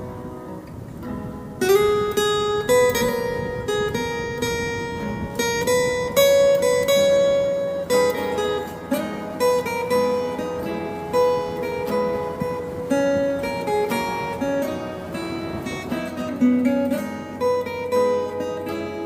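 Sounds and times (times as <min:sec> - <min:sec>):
picked acoustic guitar melody: 0:00.0 - 0:19.0.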